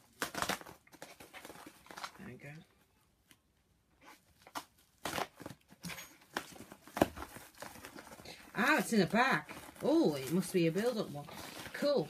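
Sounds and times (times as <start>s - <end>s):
packaging rustling and crinkling: 0.0s - 2.6s, 3.2s - 12.0s.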